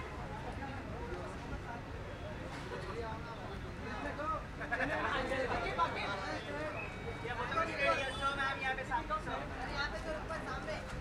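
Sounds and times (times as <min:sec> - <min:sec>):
indistinct crowd voices: 0:00.0 - 0:11.0.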